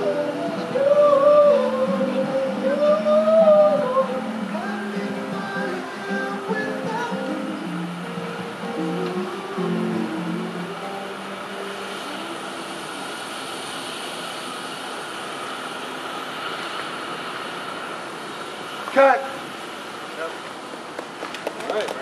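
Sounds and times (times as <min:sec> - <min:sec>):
distant engine drone: 0:00.0 - 0:22.0.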